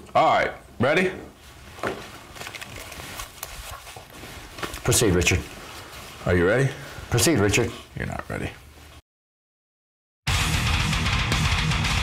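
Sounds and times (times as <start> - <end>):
clothing brushing microphone: 1.4 - 6.3
headphones rustling and clicking: 1.4 - 6.3.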